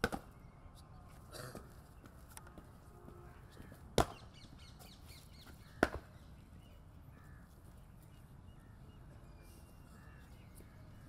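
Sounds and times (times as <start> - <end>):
crows cawing faintly: 7.0 - 9.0, 9.7 - 11.0.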